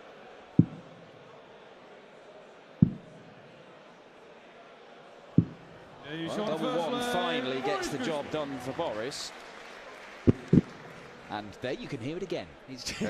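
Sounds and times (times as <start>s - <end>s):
darts striking dartboard: 0.6s - 0.8s.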